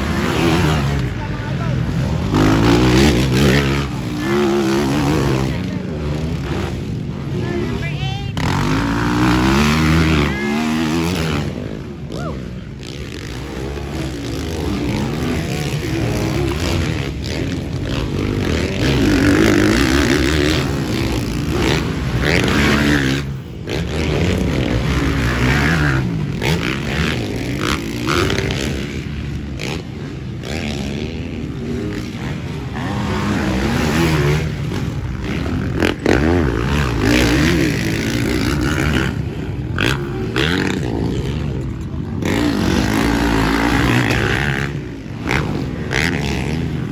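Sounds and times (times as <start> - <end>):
dirt bike engines revving: 0.0 - 46.9.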